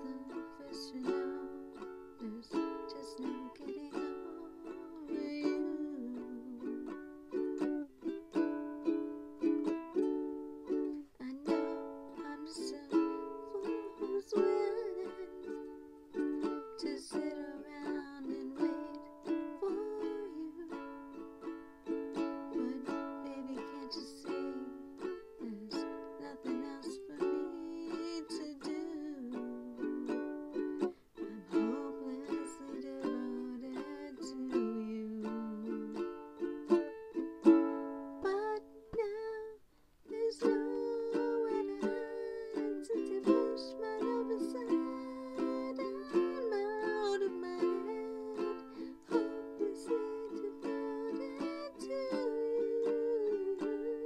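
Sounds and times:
ukulele strumming chords: 0.0s - 54.0s.

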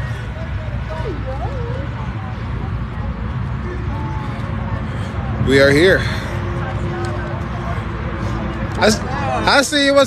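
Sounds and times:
distant voices: 0.0s - 10.0s
steady low rumble: 0.0s - 10.0s.

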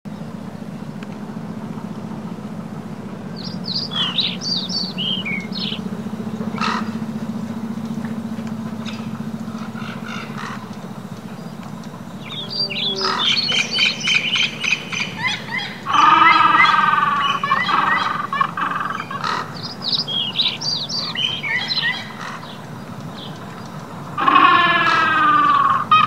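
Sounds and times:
steady low hum: 0.1s - 26.0s
high falling bird-like chirps: 2.8s - 26.0s.

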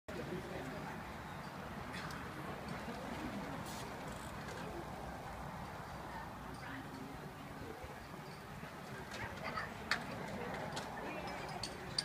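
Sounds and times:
murmur of background chatter: 0.1s - 12.0s.

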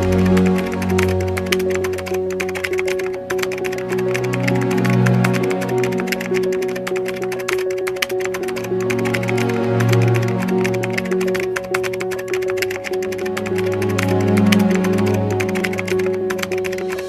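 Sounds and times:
keyboard typing clicks: 0.0s - 17.0s.

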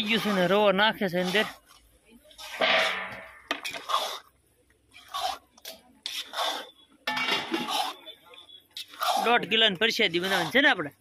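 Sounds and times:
metal spatula scraping metal pan: 0.0s - 1.6s, 2.4s - 4.2s, 5.0s - 8.2s, 8.8s - 10.7s.

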